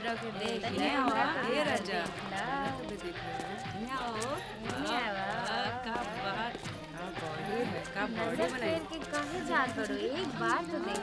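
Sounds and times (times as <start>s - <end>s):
quick tapping percussion beat: 0.0s - 11.0s.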